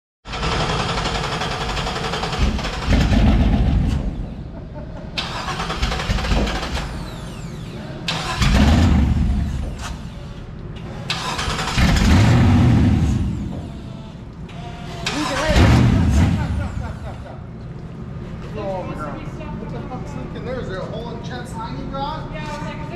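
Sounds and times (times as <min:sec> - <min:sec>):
engine revving in surges: 0:05.2 - 0:14.2, 0:15.0 - 0:17.2.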